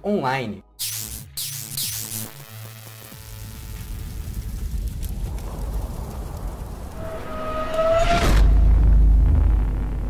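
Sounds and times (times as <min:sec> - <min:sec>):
low crackling rumble: 0:03.1 - 0:10.0
rising tone: 0:06.8 - 0:10.0.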